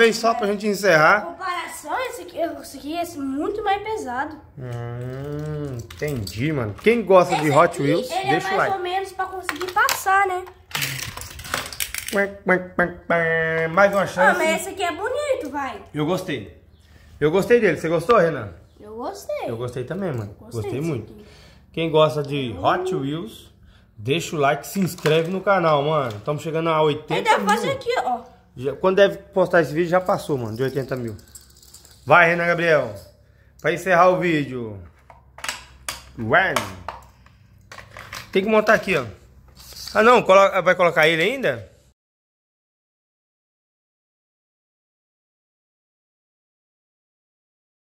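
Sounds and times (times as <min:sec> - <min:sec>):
short vocal sound: 0:04.6 - 0:05.9
short voice sounds: 0:04.6 - 0:05.9
toy car clattering on tile floor: 0:05.0 - 0:12.3, 0:24.6 - 0:26.3, 0:29.9 - 0:32.7, 0:35.0 - 0:39.0
toy car rattling on plastic track: 0:09.2 - 0:12.2, 0:30.2 - 0:32.2.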